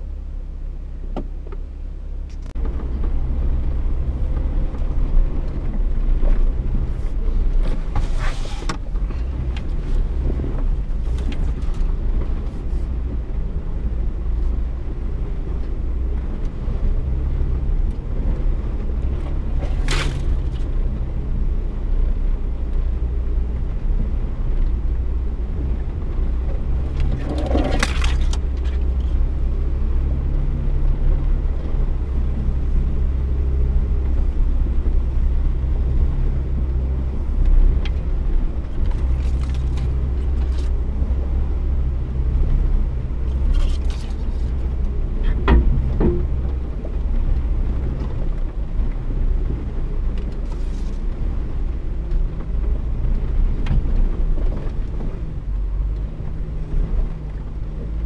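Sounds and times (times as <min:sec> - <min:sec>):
vehicle engine drone from inside cab: 0:00.0 - 0:58.0
knocks and scrapes: 0:06.2 - 0:12.9, 0:26.5 - 0:29.2, 0:38.8 - 0:40.8, 0:43.2 - 0:47.0.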